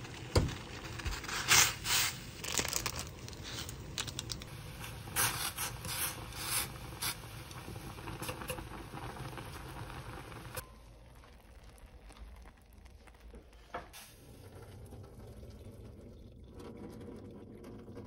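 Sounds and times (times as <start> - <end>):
noodles crackling in water: 0.0 - 4.5
water boiling in a saucepan: 0.0 - 18.0.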